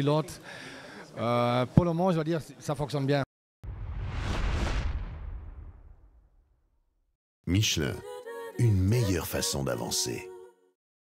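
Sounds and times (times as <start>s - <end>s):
deep rumbling boom: 3.6s - 6.8s.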